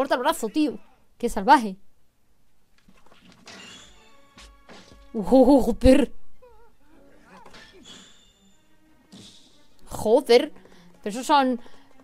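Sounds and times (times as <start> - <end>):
animated film soundtrack music: 0.0 - 1.8, 2.7 - 12.0.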